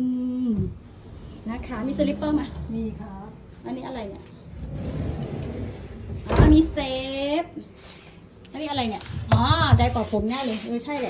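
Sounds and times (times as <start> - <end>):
woman speaking: 1.4 - 4.4, 6.4 - 7.7, 8.5 - 11.0.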